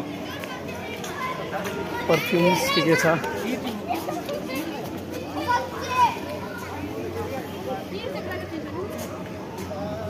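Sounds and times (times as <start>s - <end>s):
passers-by talking: 0.0s - 10.0s
children calling out: 4.0s - 6.9s.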